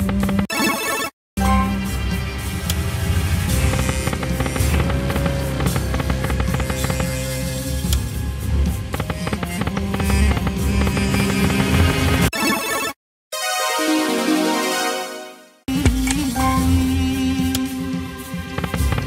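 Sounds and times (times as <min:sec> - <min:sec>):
looping slot game music: 0:00.4 - 0:07.1, 0:08.8 - 0:15.6.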